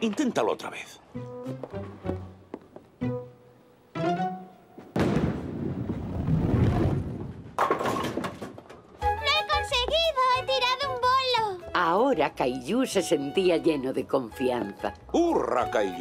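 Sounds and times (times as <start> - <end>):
plucked-string cartoon music: 3.0 - 4.8, 9.0 - 16.0
bowling pins crashing: 5.0 - 8.8.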